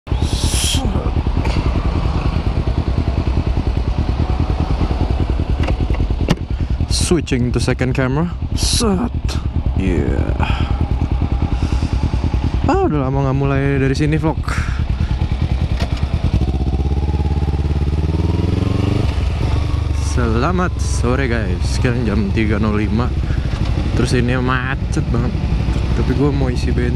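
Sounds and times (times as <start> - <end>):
motorcycle engine idling: 0.1 - 26.9.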